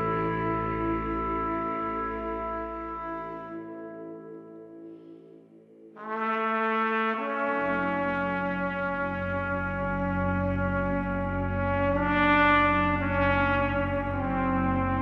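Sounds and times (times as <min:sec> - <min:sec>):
trumpet long held notes: 0:00.0 - 0:04.9, 0:06.0 - 0:15.0
lower sustained notes: 0:00.0 - 0:06.2.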